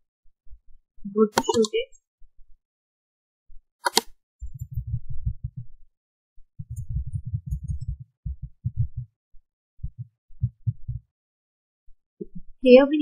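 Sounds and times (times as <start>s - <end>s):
computer keyboard typing: 3.8s - 5.0s.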